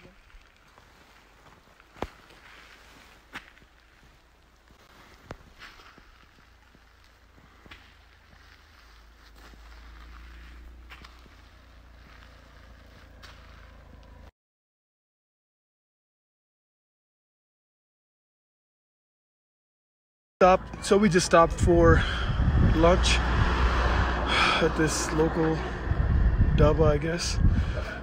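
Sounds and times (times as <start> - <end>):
faint low rumble: 0.0 - 14.3
footsteps on snowy stony ground: 0.0 - 14.3.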